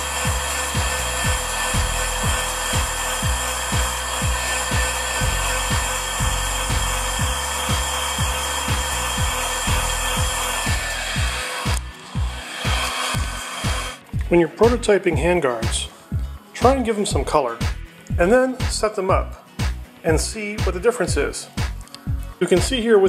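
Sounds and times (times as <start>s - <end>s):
heat gun blowing air: 0.0s - 14.1s
music with fast kick drum beat: 0.0s - 22.9s.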